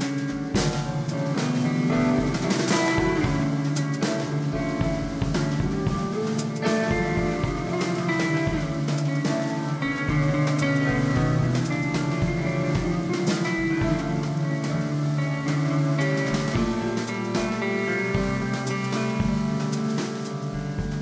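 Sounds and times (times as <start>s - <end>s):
drum kit: 0.0s - 21.0s
electric guitars ringing chords: 0.0s - 21.0s.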